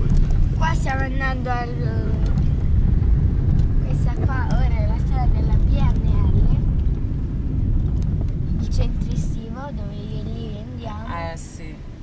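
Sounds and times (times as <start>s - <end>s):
car driving rumble from inside: 0.0s - 12.0s.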